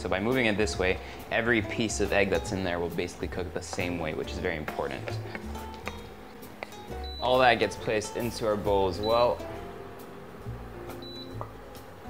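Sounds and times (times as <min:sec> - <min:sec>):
soft background music: 0:00.0 - 0:12.0
spatula scraping frying pan: 0:02.1 - 0:06.8.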